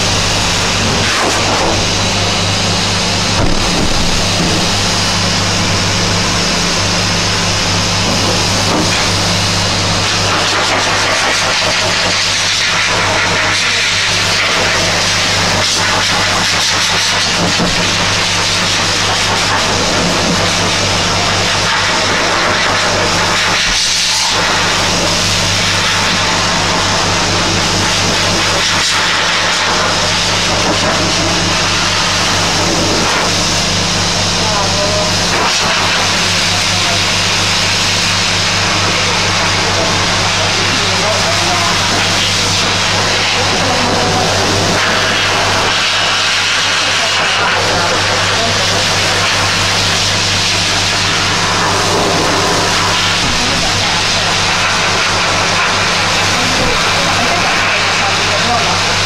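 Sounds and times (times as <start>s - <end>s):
low motor hum: 0.0s - 10.4s, 48.8s - 57.7s
dog dryer air rushing: 0.0s - 59.0s.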